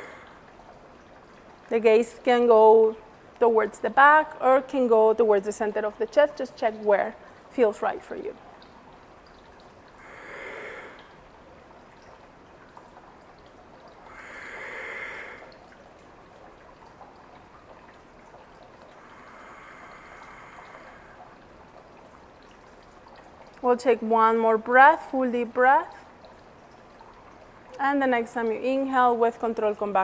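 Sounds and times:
woman breathing slowly: 0.0s - 0.4s, 10.0s - 11.2s, 14.0s - 15.6s, 18.9s - 21.4s
water trickling from fountain: 0.0s - 30.0s.

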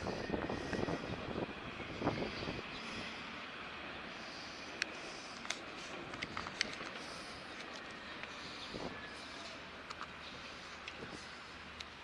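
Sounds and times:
wind on microphone: 0.0s - 3.1s.

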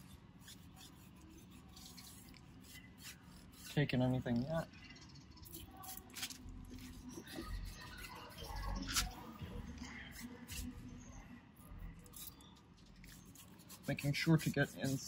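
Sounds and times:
brush scrubbing tire: 0.0s - 4.6s, 13.1s - 15.0s.

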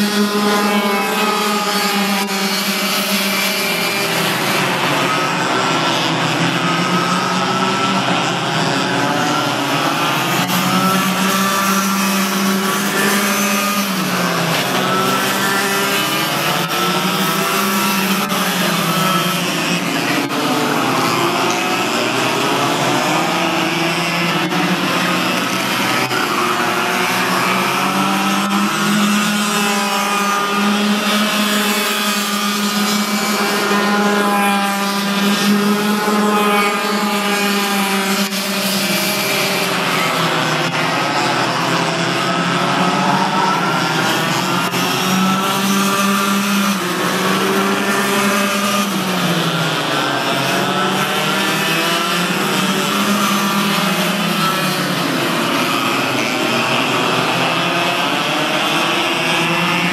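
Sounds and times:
racing kart engines: 0.0s - 59.9s.

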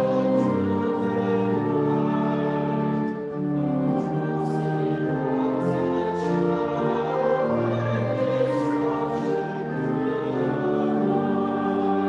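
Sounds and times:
church choir singing: 0.0s - 12.0s.

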